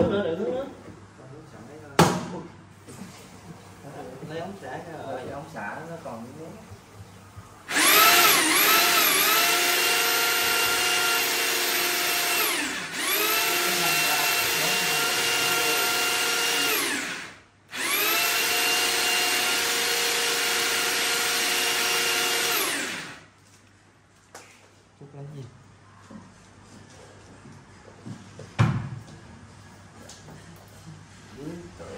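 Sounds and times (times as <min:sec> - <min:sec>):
electric drill whining: 0:07.7 - 0:23.3.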